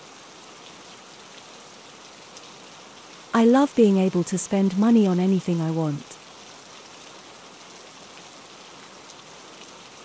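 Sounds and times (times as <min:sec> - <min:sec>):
steady rain falling: 0:00.0 - 0:10.0.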